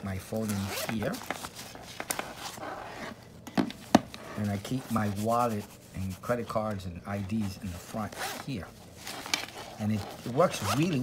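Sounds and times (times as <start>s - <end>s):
fabric rubbing: 0.4s - 11.0s.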